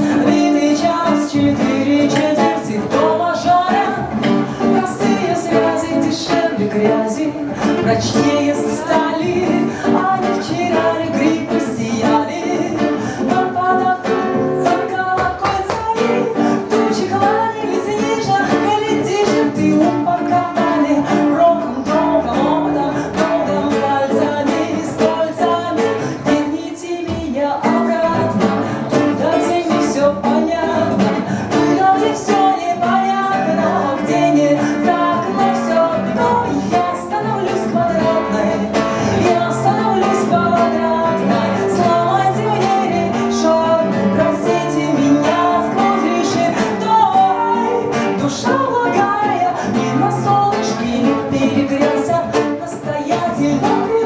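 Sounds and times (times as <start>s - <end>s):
strummed acoustic guitar: 0.0s - 54.0s
woman singing: 0.0s - 54.0s.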